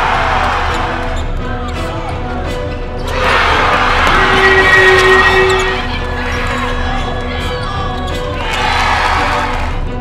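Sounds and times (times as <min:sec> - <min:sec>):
crowd noise: 0:00.0 - 0:09.8.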